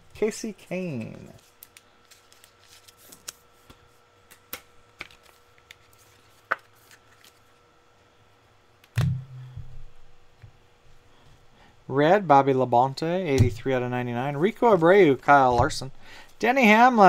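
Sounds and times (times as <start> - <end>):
trading cards clicking and snapping: 1.6 - 5.8
low thump: 9.0 - 9.8.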